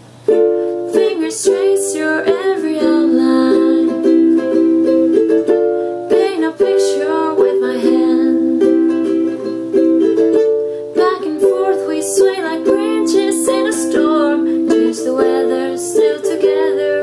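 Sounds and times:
ukulele strumming: 0:00.0 - 0:17.0.

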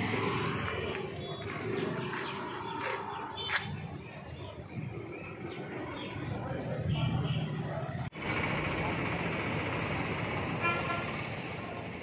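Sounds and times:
motorcycles passing: 0:00.0 - 0:12.0
street traffic: 0:00.0 - 0:12.0
vehicle horn toot: 0:10.6 - 0:11.2.

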